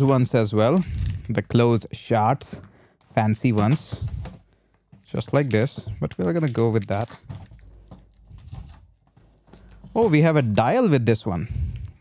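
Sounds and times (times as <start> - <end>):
plastic bag crinkling: 5.0 - 10.6.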